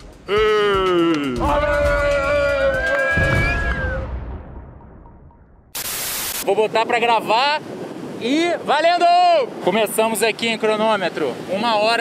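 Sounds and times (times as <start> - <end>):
static hiss: 5.7 - 6.7.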